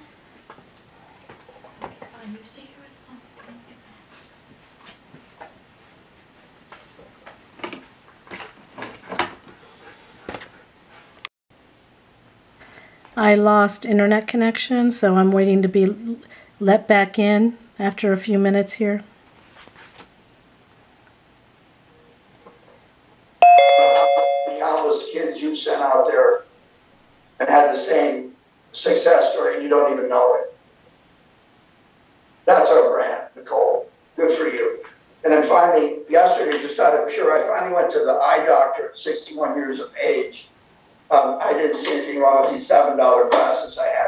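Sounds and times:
faint room hiss: 0:00.0 - 0:44.0
two-note chime from laptop: 0:23.4 - 0:24.7.

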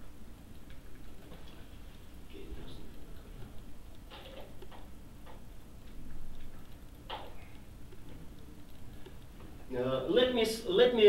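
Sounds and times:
faint clicks and taps: 0:00.3 - 0:09.7.

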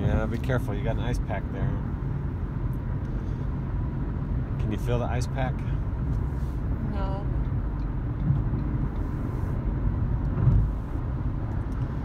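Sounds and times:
road and engine noise in car: 0:00.0 - 0:12.0.

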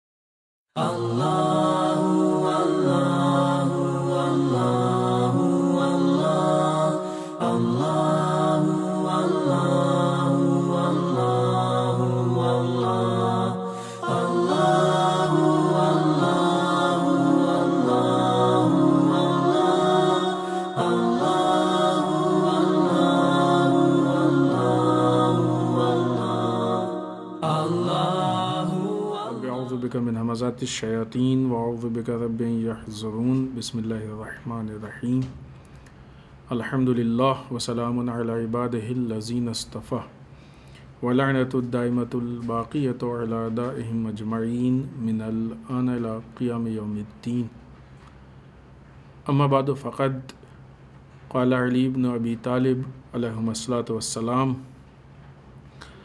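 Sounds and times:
slow chanted vocal: 0:00.8 - 0:48.4, 0:49.1 - 0:56.0
man chanting: 0:25.3 - 0:35.3, 0:36.5 - 0:40.1, 0:51.3 - 0:54.7.

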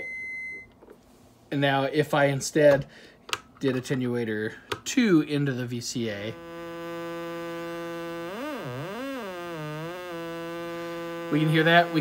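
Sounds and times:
synthesizer tone rich in harmonics: 0:06.4 - 0:12.0.

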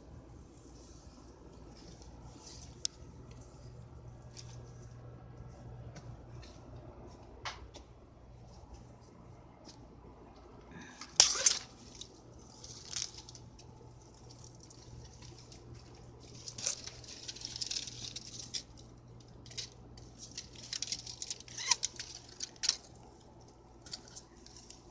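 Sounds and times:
leaves and stems rustling: 0:00.0 - 0:06.6, 0:10.8 - 0:24.9
stems snapping: 0:10.9 - 0:24.9.

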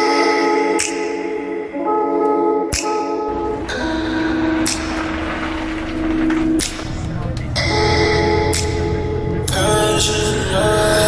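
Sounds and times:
bus engine rumble: 0:03.3 - 0:11.0.

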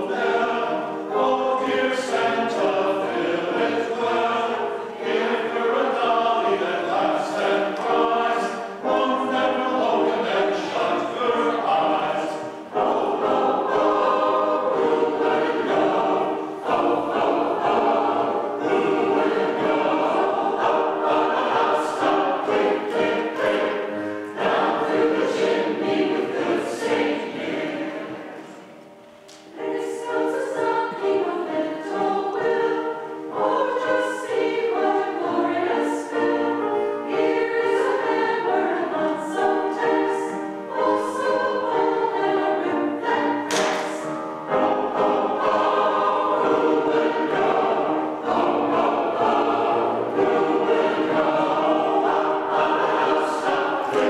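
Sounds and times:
mixed choir singing christmas song: 0:00.0 - 0:54.0.

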